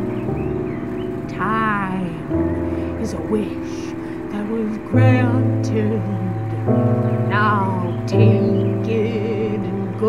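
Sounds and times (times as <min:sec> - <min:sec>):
sustained chords: 0:00.0 - 0:10.0
person singing: 0:01.3 - 0:10.0.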